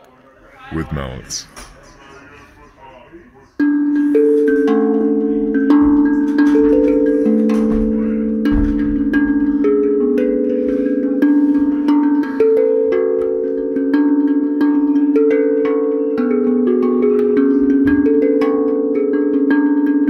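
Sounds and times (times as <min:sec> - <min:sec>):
mallet percussion ringing notes: 0:03.6 - 0:20.0.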